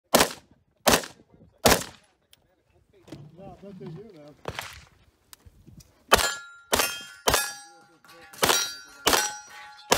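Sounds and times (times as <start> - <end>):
rifle shots: 0.1 - 2.0, 8.4 - 9.9.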